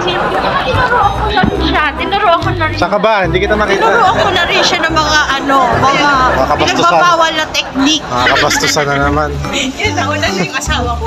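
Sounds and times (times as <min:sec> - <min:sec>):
women laughing: 0:00.0 - 0:01.2, 0:03.7 - 0:10.8
women chatting: 0:00.0 - 0:02.8, 0:03.8 - 0:11.0
background music: 0:00.0 - 0:11.0.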